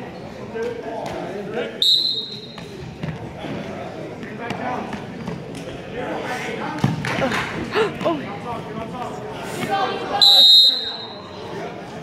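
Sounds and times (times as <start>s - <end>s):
referee's whistle blast: 1.8s - 2.6s, 10.2s - 11.3s.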